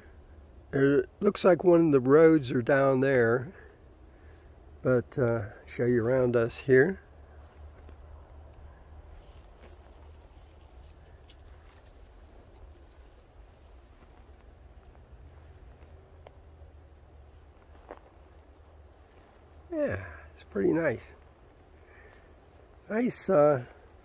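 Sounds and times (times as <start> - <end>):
faint low rumble: 0.0 - 24.0
soft rustles: 7.3 - 16.6, 17.2 - 19.7.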